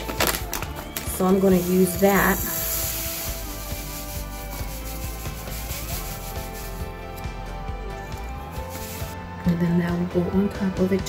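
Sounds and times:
sand pouring into plastic cup: 0.0s - 7.2s, 8.4s - 9.2s
background music: 0.0s - 11.0s.

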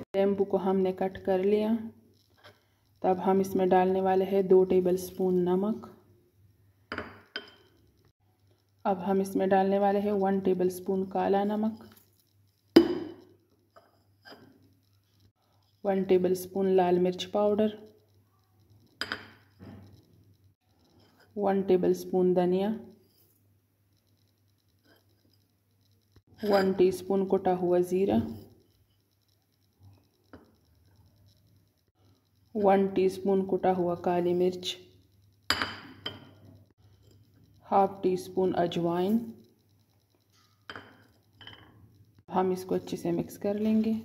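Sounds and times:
spoon clinking against dish: 6.9s - 7.7s, 19.0s - 19.5s, 35.5s - 36.5s, 40.6s - 41.7s.

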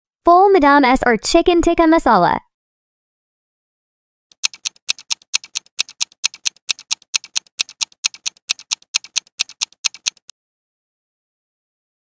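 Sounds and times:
clock ticking quickly: 4.3s - 10.3s.

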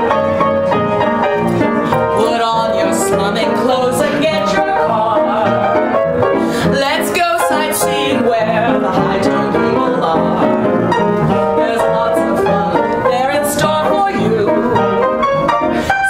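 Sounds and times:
ragtime piano: 0.0s - 16.0s.

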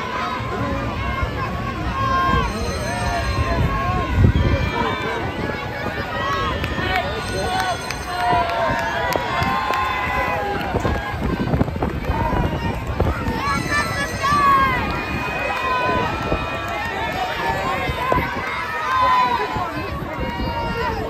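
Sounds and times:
crowd talking and calling out: 0.0s - 21.0s.

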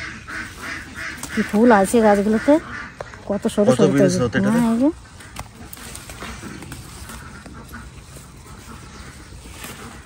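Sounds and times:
rustle of leafy plants: 0.0s - 3.6s, 4.3s - 10.0s
ducks quacking: 0.0s - 10.0s.

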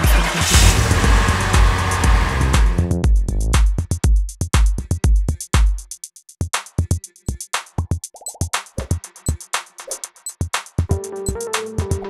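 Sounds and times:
car rushing sound effect: 0.0s - 2.9s
electronic music with steady beat: 0.0s - 12.0s.

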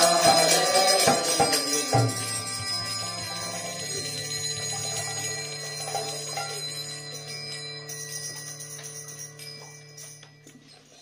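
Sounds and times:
people chanting: 0.0s - 6.7s
hand cymbals ringing: 0.0s - 11.0s.

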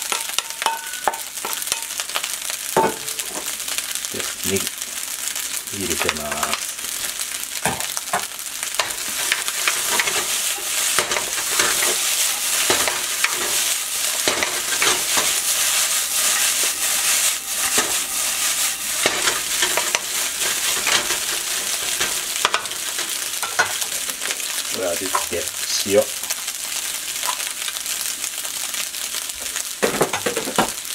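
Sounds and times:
rice sizzling in a wok: 0.0s - 30.9s
wok knocks: 2.8s - 3.4s
spatula scraping wok: 7.8s - 25.4s.

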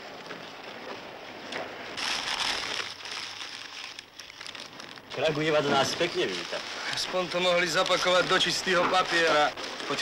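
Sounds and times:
newspaper rustling and crumpling: 2.0s - 10.0s.

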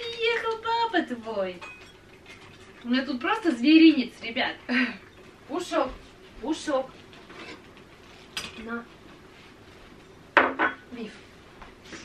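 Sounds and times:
dishware clinking: 1.6s - 2.1s.

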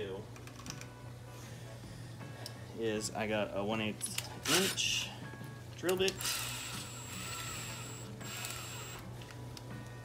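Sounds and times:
cordless drill whirring: 6.1s - 9.1s.

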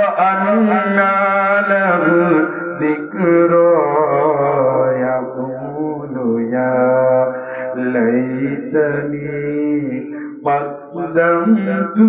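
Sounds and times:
man chanting sermon into microphone: 0.0s - 12.0s.

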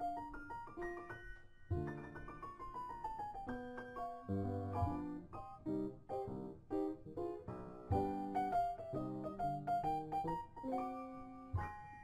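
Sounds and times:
piano playing chords: 0.0s - 12.0s.

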